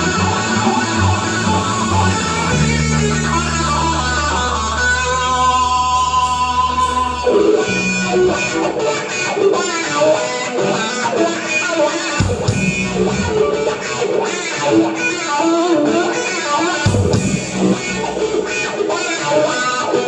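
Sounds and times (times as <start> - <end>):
live rock band instrumental: 0.0 - 20.0.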